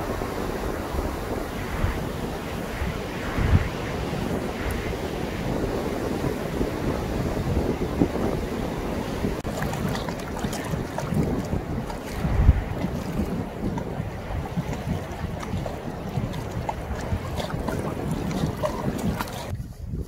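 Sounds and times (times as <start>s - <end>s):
wind buffeting microphone: 0.0s - 20.0s
water lapping against rocks: 9.2s - 19.6s.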